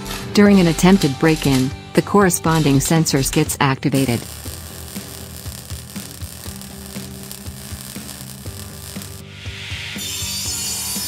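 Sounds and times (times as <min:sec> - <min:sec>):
soft background music: 0:00.0 - 0:11.0
harsh grinding hiss: 0:04.0 - 0:11.0.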